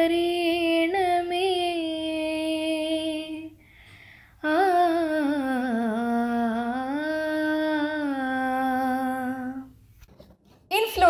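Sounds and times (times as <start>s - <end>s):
woman speaking: 10.7s - 11.0s.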